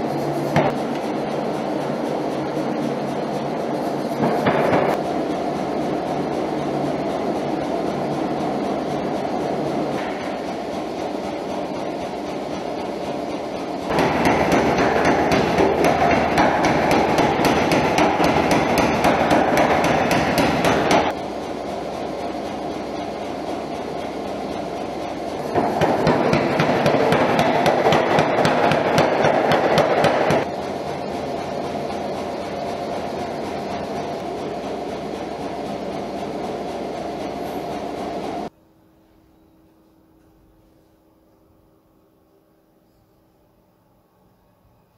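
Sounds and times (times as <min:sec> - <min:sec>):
fast dense clatter: 0:23.7 - 0:36.3.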